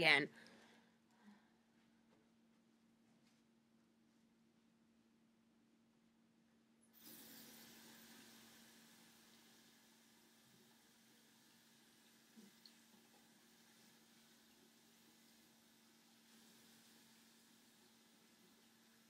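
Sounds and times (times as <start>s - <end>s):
faint steady hiss: 5.8s - 19.0s.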